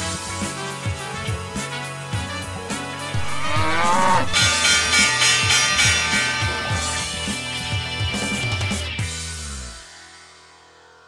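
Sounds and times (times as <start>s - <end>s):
band intro music: 3.1s - 4.8s
bull bellow sound effect: 3.2s - 4.4s.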